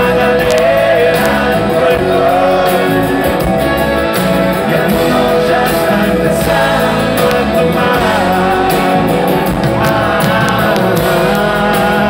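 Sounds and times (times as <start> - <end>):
live rock band playing: 0.0 - 12.0.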